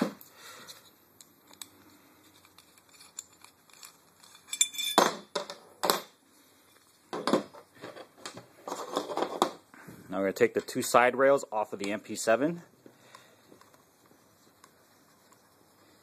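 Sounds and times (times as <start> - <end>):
small metal parts clinking: 1.5 - 6.1.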